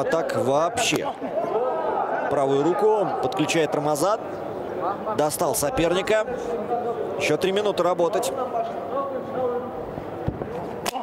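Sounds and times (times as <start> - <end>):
crowd murmuring and shouting: 0.0 - 11.0.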